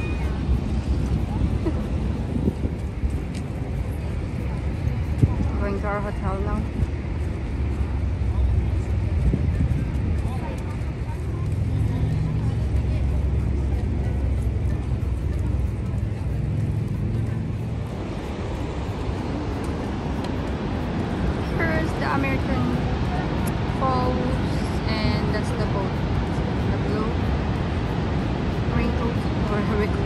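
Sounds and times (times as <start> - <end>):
faint voices: 0.0 - 30.0
traffic: 0.0 - 30.0
waterfall rumble: 0.0 - 30.0.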